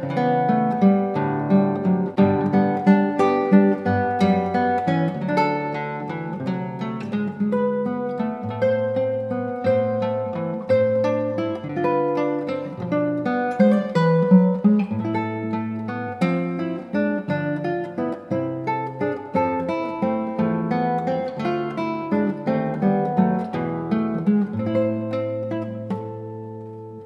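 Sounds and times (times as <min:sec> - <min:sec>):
classical guitar fingerstyle: 0:00.0 - 0:27.0.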